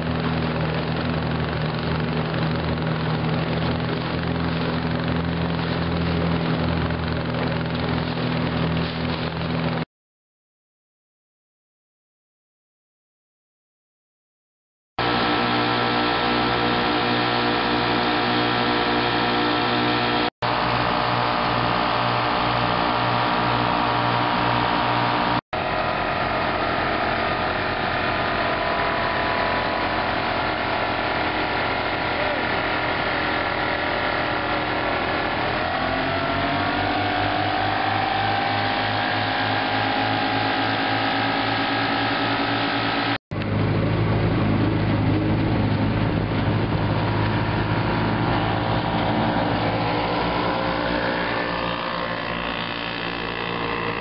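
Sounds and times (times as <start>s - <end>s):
outboard motors running: 0.0s - 9.8s, 15.0s - 54.0s.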